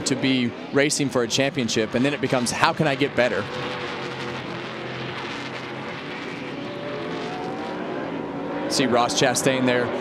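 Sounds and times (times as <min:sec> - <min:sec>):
truck engine accelerating: 0:00.0 - 0:10.0.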